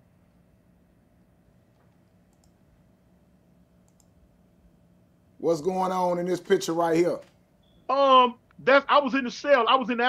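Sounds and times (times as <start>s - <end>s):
computer mouse clicks: 1.7s - 2.6s, 3.8s - 4.2s.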